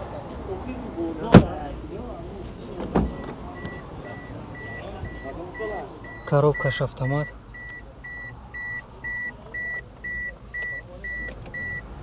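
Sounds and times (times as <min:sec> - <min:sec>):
car warning chime beeping: 0:03.0 - 0:12.0.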